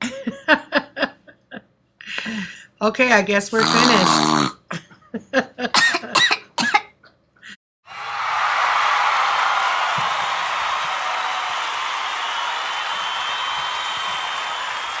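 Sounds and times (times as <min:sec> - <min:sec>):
crowd applauding and cheering: 0:07.9 - 0:15.0.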